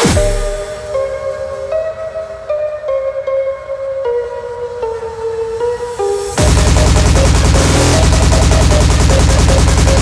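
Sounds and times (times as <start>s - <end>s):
synth riff: 6.3s - 10.0s
fast kick drum: 6.4s - 10.0s.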